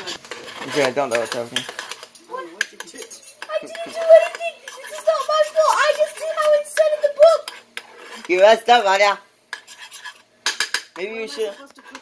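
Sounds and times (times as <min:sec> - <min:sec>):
metal utensil scraping in a ladle: 0:00.0 - 0:08.6, 0:09.5 - 0:12.0.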